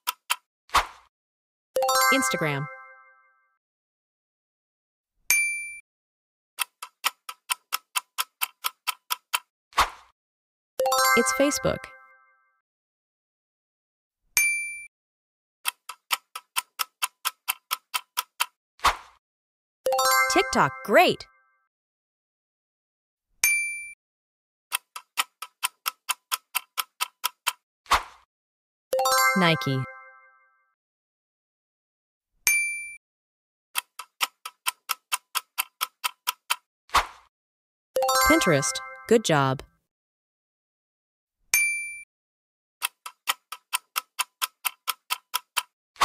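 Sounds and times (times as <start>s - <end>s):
clock ticking countdown: 6.6s - 9.5s, 10.8s - 12.0s, 15.7s - 18.6s, 19.9s - 21.3s, 24.7s - 27.6s, 33.8s - 36.7s, 38.0s - 39.7s, 42.8s - 45.8s.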